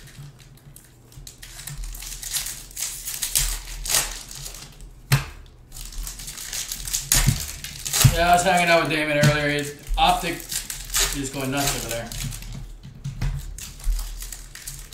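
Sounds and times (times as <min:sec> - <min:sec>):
foil wrapper tearing and crinkling: 0:00.0 - 0:14.9.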